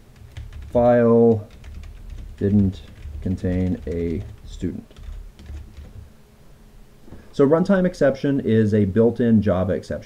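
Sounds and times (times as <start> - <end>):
quiet keyboard keystrokes: 0.2 - 6.0.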